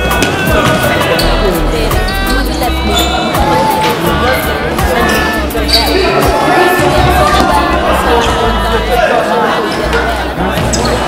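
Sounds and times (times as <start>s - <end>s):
music with pulsing bass beat: 0.0s - 8.9s
vocals over music: 0.0s - 11.0s.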